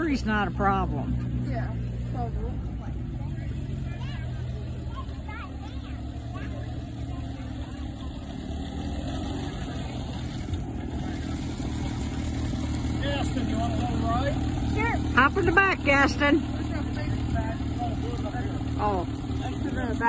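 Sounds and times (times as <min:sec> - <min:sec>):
small car engine running: 0:00.0 - 0:20.0.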